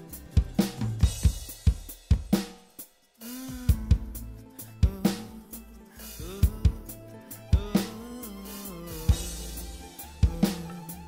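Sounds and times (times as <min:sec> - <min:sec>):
recorded song melody: 0:00.0 - 0:11.0
sampled drum kit fills: 0:00.0 - 0:11.0.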